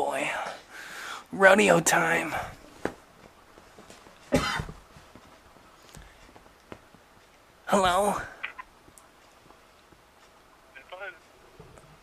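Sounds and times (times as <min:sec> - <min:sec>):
person coughing: 0:04.3 - 0:04.8.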